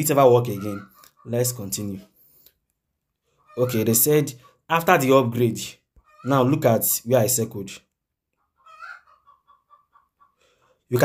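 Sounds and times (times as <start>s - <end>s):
faint animal calls: 0.5s - 1.4s, 3.3s - 4.7s, 6.0s - 6.4s, 8.4s - 10.8s.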